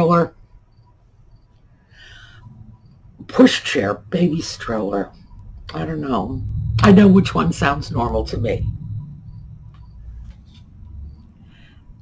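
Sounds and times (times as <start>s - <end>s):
steady low hum: 0.0s - 12.0s
faint high chirps: 0.5s - 11.8s.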